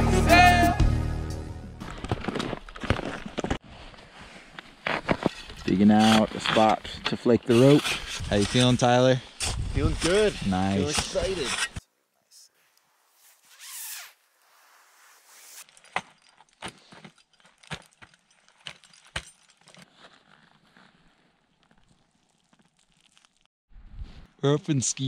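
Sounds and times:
faint rustling of gear: 0:12.3 - 0:23.5
ice axes striking ice: 0:15.6 - 0:19.8.

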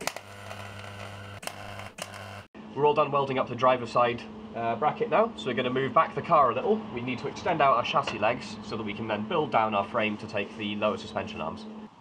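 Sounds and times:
welder arc crackling sizzle: 0:00.0 - 0:02.5.

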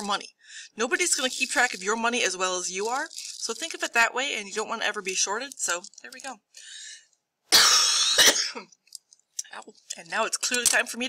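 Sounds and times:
person coughing: 0:07.6 - 0:08.7.

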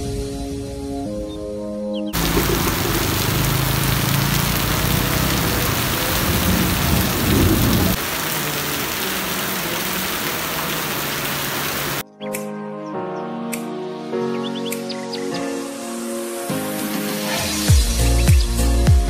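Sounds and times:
deep rumble: 0:02.2 - 0:08.0
heavy rain hiss: 0:02.2 - 0:12.0.

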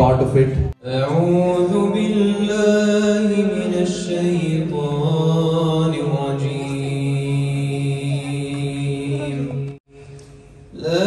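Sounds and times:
man reciting melodically: 0:00.0 - 0:09.8, 0:10.7 - 0:11.0.

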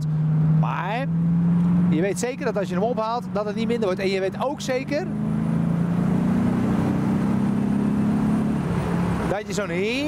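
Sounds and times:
car engine pulling: 0:00.0 - 0:10.0.

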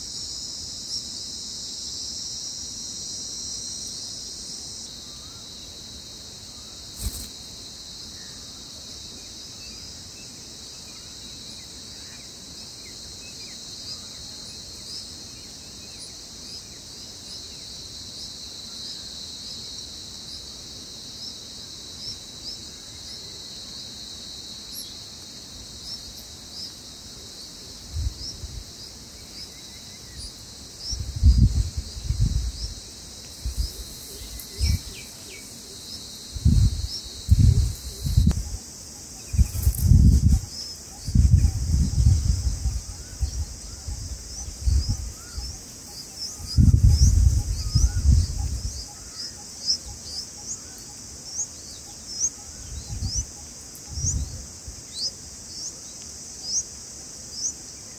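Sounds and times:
high insect hiss: 0:00.0 - 0:57.9.

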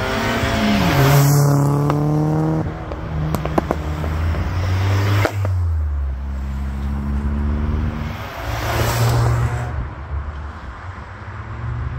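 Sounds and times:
car driving past: 0:00.0 - 0:10.6.

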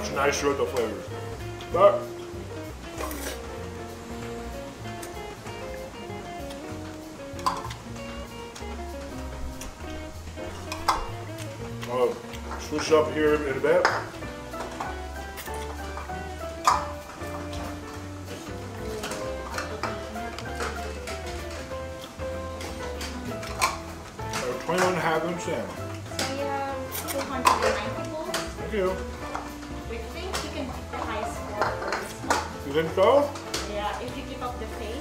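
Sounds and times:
bowls and utensils clattering: 0:00.0 - 0:05.8, 0:06.6 - 0:34.2
background music with bass line: 0:00.0 - 0:35.0.

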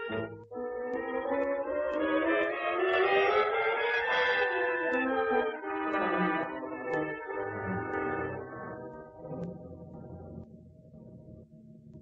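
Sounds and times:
orchestral brass melody: 0:00.0 - 0:09.3.

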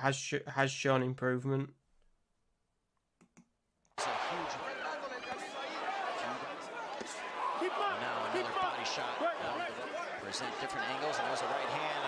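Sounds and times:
crowd din of voices: 0:04.0 - 0:12.0.

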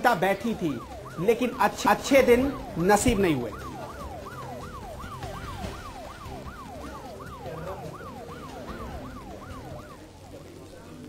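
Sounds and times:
siren yelping: 0:00.0 - 0:11.0.

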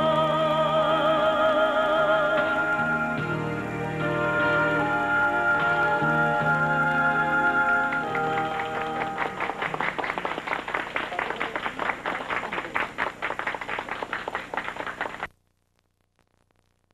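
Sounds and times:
studio audience applause: 0:07.9 - 0:15.3.

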